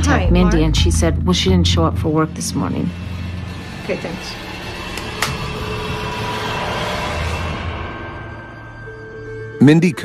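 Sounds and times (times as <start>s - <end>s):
tense soundtrack drone: 0.0s - 10.0s.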